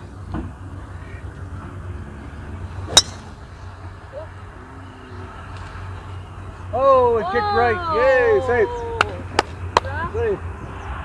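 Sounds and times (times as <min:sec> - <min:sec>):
golf tee shot: 0:02.9 - 0:03.4.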